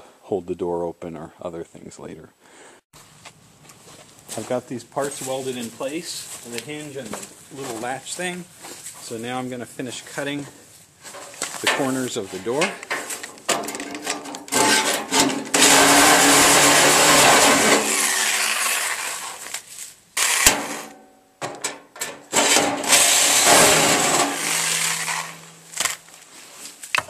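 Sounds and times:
reciprocating saw cutting steel: 14.5s - 19.5s, 22.3s - 26.0s.

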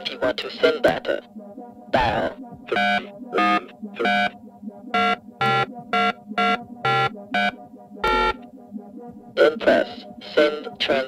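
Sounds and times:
electronic telephone beeps: 2.7s - 4.3s, 5.0s - 8.4s.

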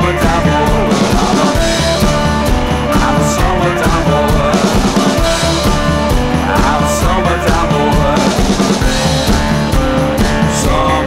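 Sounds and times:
rock song with steady beat: 0.0s - 11.0s.

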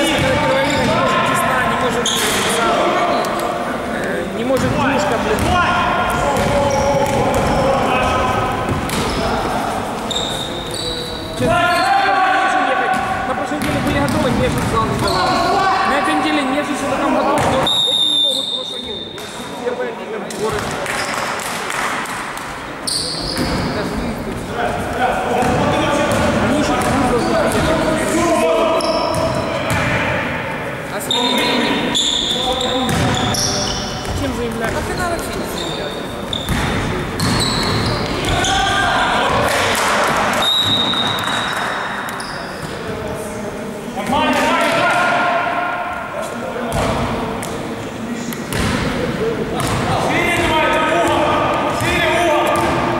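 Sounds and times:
sneakers squeaking: 0.0s - 12.2s, 12.9s - 19.6s, 20.3s - 21.7s, 22.4s - 28.0s, 28.6s - 30.0s, 30.8s - 39.6s, 40.2s - 43.0s, 46.7s - 48.9s, 49.5s - 52.9s
players' voices and shouts: 0.0s - 52.9s
players shouting: 4.8s - 14.0s, 37.4s - 41.7s
basketball bouncing: 6.4s - 7.6s, 25.4s - 27.7s, 32.9s - 33.2s, 36.3s - 38.5s, 48.5s - 48.8s, 49.6s - 50.5s, 52.5s - 52.9s.

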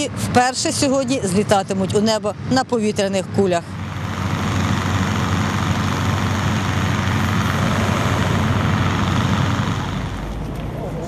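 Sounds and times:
low drone: 3.6s - 11.0s
propane burner roaring: 3.6s - 11.0s.

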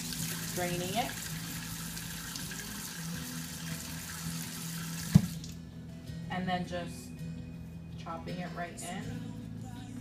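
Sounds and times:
tap water splashing into sink: 4.8s - 5.6s.

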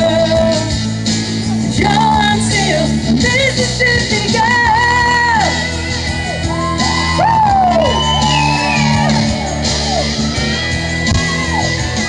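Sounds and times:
woman singing: 0.0s - 0.9s, 1.6s - 5.7s
guitar accompaniment: 0.0s - 12.0s.

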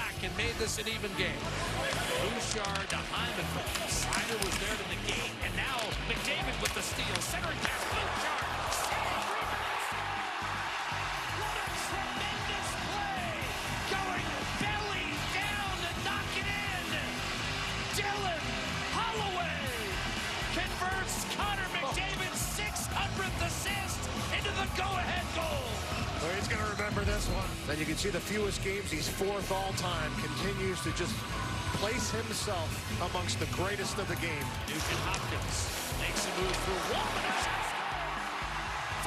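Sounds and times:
arena crowd noise: 0.0s - 39.0s
music: 0.0s - 39.0s
hockey sticks and puck knocking: 5.8s - 9.4s.

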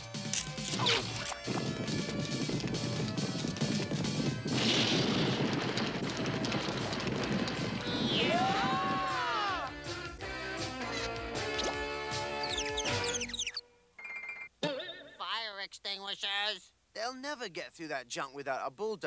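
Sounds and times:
background music: 7.3s - 14.0s
whistling glide: 7.8s - 8.7s.

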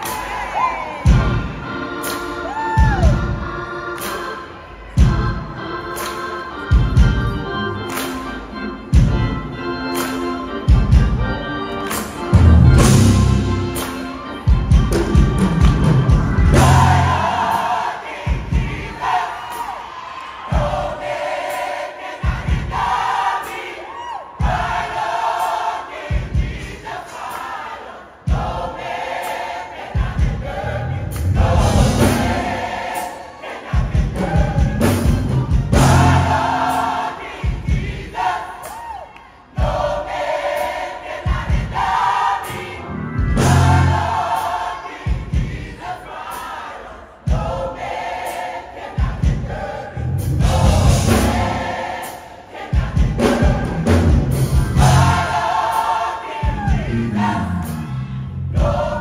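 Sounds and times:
gospel choir singing: 0.0s - 59.0s.

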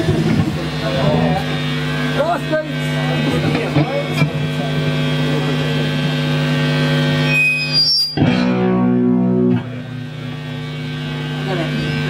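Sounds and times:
guitar amplifier buzz: 0.0s - 12.0s.

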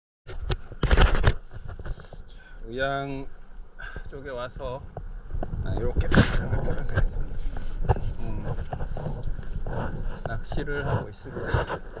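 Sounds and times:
microphone rumbling and rustling: 0.2s - 12.0s.

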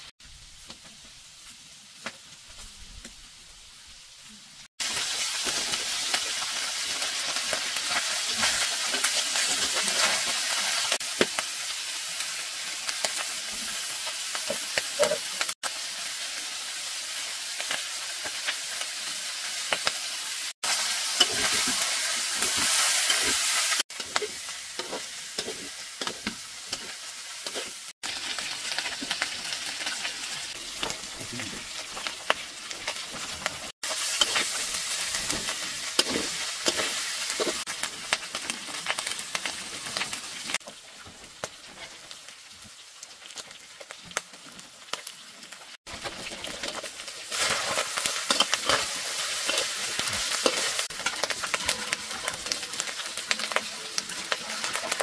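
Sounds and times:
eel sizzling in a wok: 0.0s - 55.0s
metal spatula scraping a pan: 20.7s - 27.9s, 32.9s - 37.7s, 46.0s - 55.0s.

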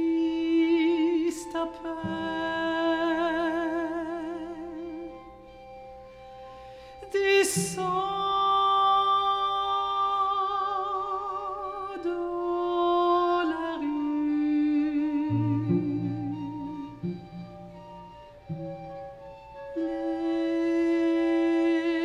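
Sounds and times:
woman singing with vibrato: 0.0s - 5.2s, 7.0s - 18.1s, 19.8s - 22.0s
sustained strings: 13.3s - 22.0s.

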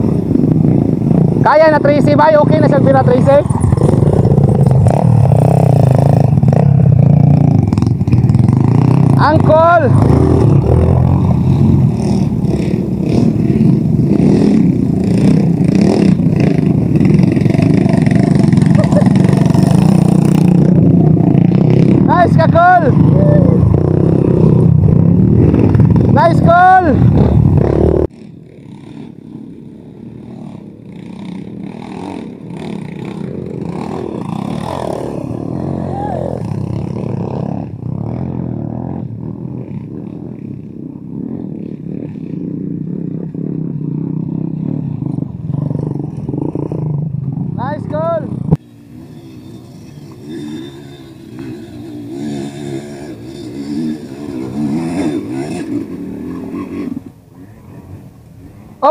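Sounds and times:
dirt bike engine: 0.0s - 58.9s
person calling out: 22.0s - 23.7s, 26.1s - 27.1s, 35.6s - 36.4s.

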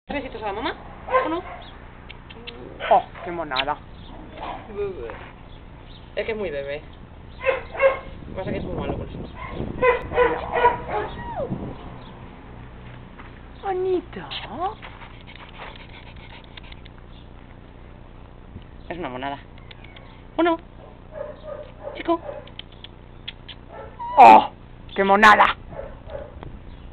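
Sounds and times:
dog whimpering and yipping: 9.4s - 11.5s, 23.7s - 24.5s
person calling out: 24.0s - 24.6s.

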